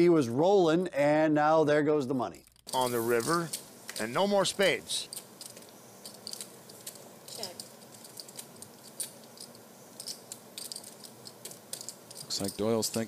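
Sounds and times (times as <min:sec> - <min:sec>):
faint steady hum: 0:00.0 - 0:13.0
clay poker chips clicking: 0:05.0 - 0:13.0.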